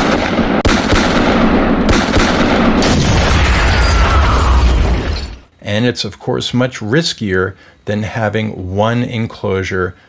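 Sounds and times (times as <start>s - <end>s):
automatic gunfire: 0.0s - 3.3s
explosion with deep rumble: 0.0s - 5.4s.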